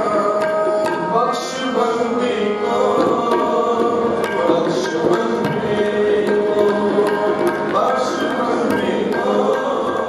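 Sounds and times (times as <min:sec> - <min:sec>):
group devotional singing: 0:00.0 - 0:10.0
tabla strokes: 0:00.0 - 0:10.0.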